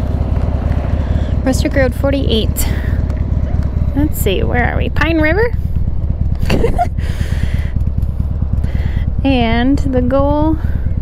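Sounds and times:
motorcycle engine idling: 0.0 - 11.0.

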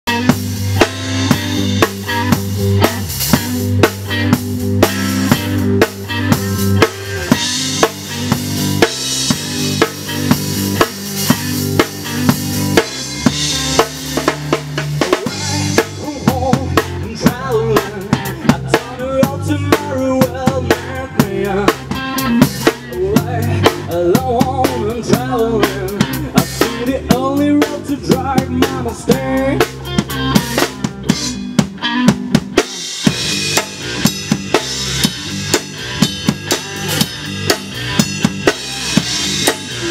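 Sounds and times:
bass guitar line: 0.0 - 39.9
drum kit beat: 0.1 - 39.9
guitar with bending notes: 0.1 - 39.9
person singing: 15.0 - 30.7.

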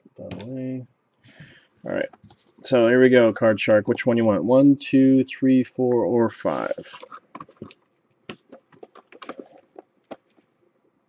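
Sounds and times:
cardboard card packs clicking: 6.8 - 10.4.

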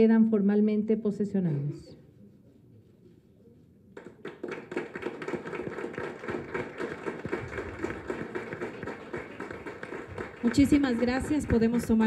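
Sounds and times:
small group clapping: 4.0 - 12.0.

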